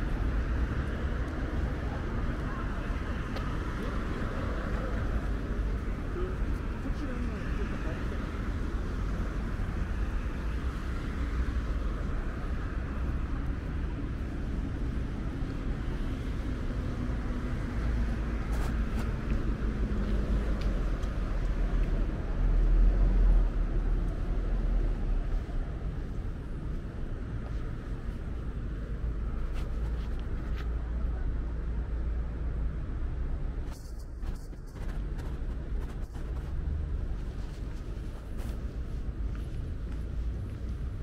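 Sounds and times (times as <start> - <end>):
distant road traffic rumble: 0.0 - 41.0.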